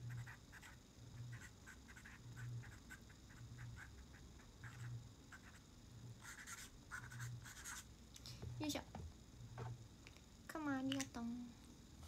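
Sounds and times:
marker pen scratching on paper: 0.1s - 5.6s, 6.2s - 7.9s.

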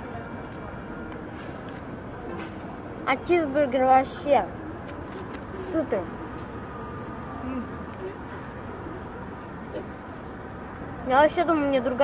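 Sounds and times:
low rumble of street traffic: 0.0s - 12.0s
faint voice: 7.4s - 8.2s.

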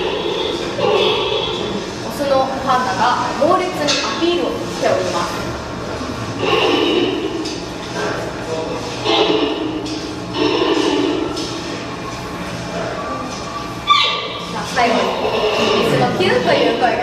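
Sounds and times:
panda calling: 0.0s - 1.8s, 13.8s - 16.9s.

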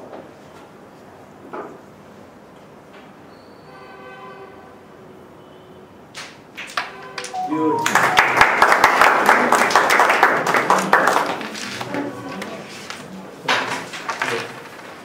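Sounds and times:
applause: 6.6s - 12.2s
rising notes: 7.3s - 9.0s.

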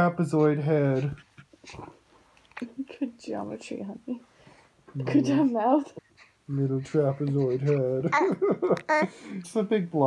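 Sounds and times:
baby grunting and whimpering: 0.3s - 1.9s, 6.6s - 9.2s.

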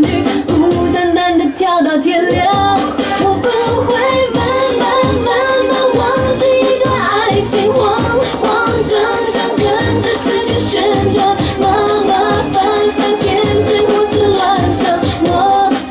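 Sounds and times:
pop song with singer: 0.0s - 15.9s
steady dance beat: 0.0s - 15.9s.

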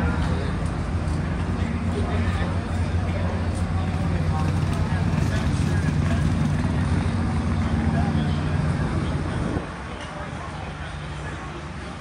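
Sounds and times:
faint voices: 0.0s - 12.0s
low engine drone: 0.0s - 12.0s.

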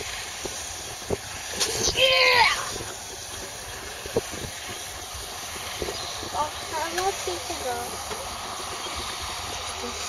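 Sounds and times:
constant hiss: 0.0s - 10.0s.

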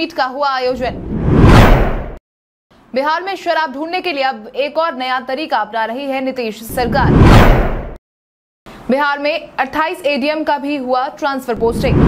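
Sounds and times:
whoosh transition: 0.8s - 2.2s, 6.7s - 8.0s.

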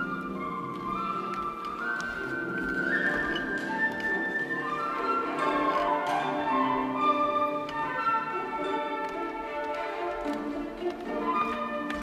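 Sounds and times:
bowed cello: 0.0s - 12.0s
flute: 0.0s - 12.0s.

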